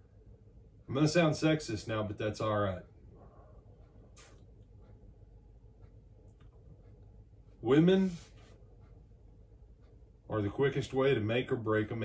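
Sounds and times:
man speaking: 0.9s - 2.9s, 7.6s - 8.3s, 10.3s - 12.0s.

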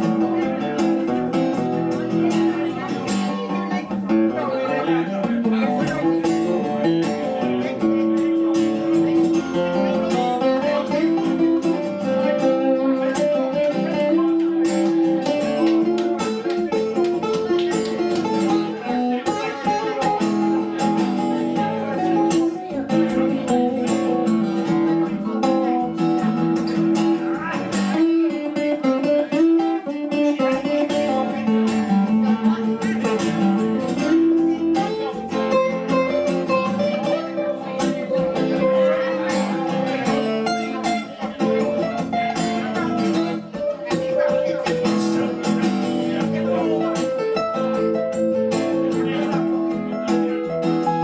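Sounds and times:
acoustic guitar strumming chords: 0.0s - 51.0s.

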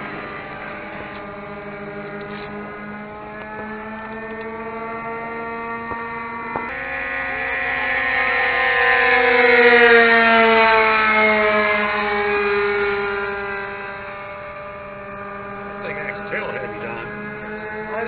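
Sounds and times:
model plane motor flying past: 0.0s - 18.0s.

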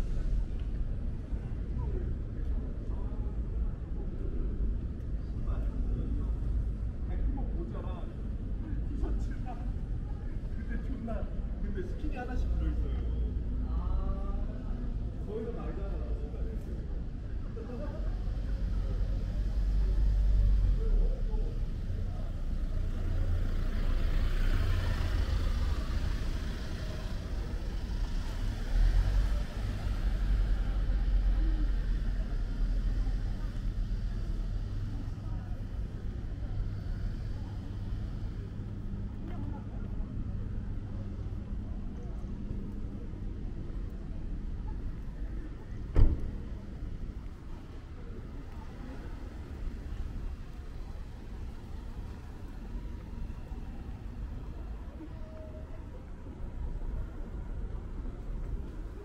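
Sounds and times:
rumble of car traffic: 0.0s - 59.0s.

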